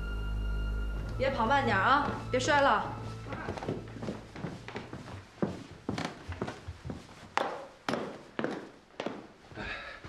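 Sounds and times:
background music: 0.0s - 5.1s
child running down wooden stairs: 3.2s - 9.5s.

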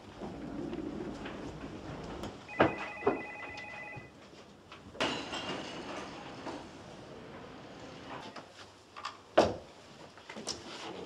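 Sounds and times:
telephone bell ringing: 2.5s - 4.1s.

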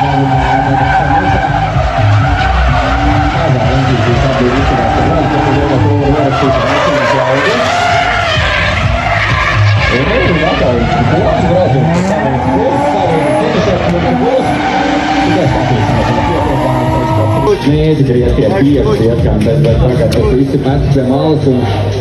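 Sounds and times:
tyres squealing: 0.0s - 17.9s
car engine revving: 0.0s - 22.0s.

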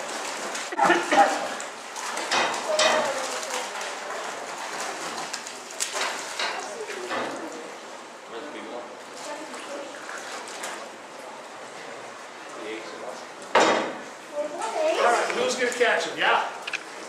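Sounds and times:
water splashing and dripping: 0.0s - 8.1s, 9.0s - 12.6s, 15.2s - 17.0s.

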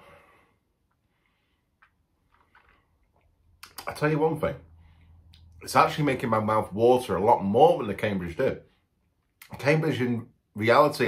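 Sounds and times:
wet mouth clicks and lip smacks: 1.8s - 3.9s
man speaking: 3.6s - 4.7s, 5.6s - 8.8s, 9.4s - 11.0s.

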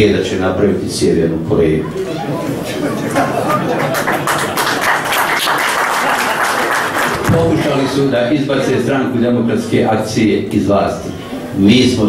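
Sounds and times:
audience applauding: 2.8s - 8.1s.

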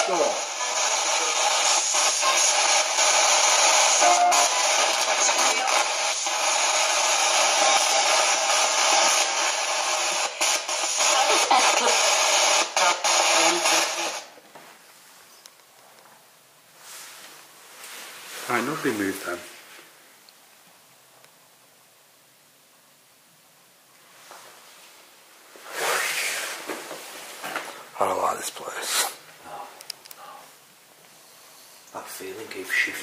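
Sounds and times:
radio static with rapid clicks: 0.0s - 14.4s.

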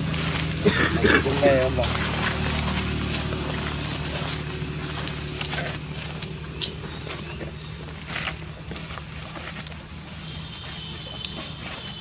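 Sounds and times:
macaque calling: 0.0s - 9.8s
steady low hum: 0.0s - 12.0s.

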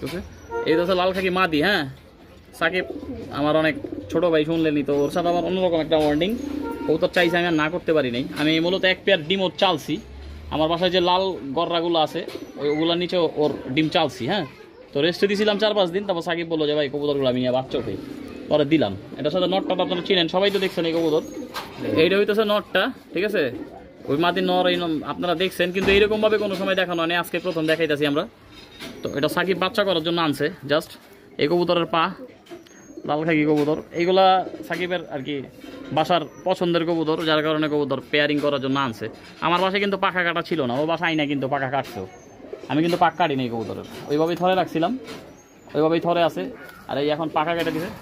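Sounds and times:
pigeons cooing: 0.0s - 48.0s.

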